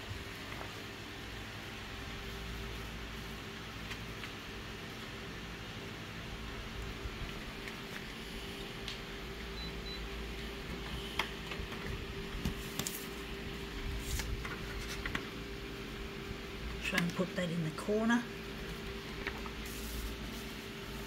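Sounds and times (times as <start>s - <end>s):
photocopier fans humming: 0.0s - 21.0s
paper sheet clicks and rustles: 11.2s - 13.3s, 13.9s - 15.4s.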